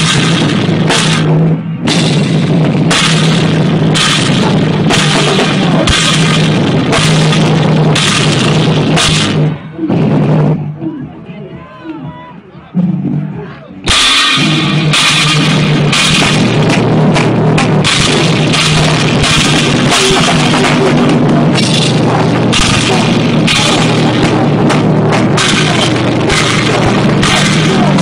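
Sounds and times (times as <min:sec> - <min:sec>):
live heavy rock band: 0:00.0 - 0:10.6, 0:13.8 - 0:28.0.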